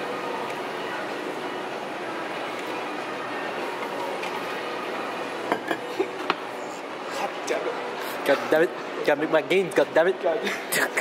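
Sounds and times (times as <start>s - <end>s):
ventilation rushing noise: 0.0s - 11.0s.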